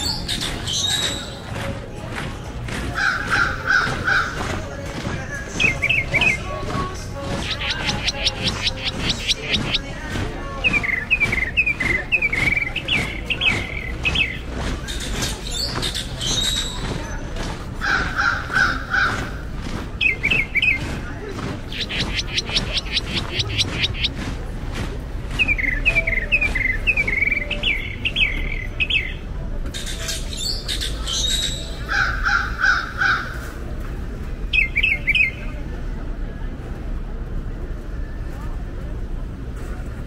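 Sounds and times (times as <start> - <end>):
songbird singing: 0.0 - 33.6, 34.2 - 35.7
footsteps on pavement: 0.0 - 35.6
low street background: 0.0 - 40.0.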